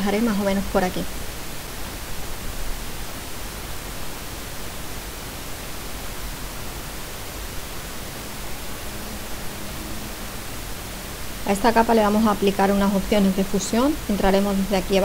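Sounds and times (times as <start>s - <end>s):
steady background hiss: 0.0s - 15.0s.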